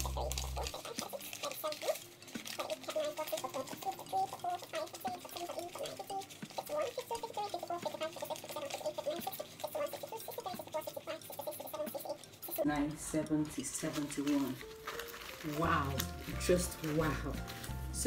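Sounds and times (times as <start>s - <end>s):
banknotes being counted: 0.0s - 18.0s.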